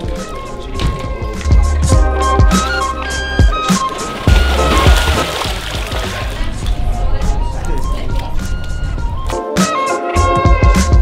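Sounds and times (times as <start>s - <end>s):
background music with bass beat: 0.0s - 6.5s, 8.4s - 11.0s.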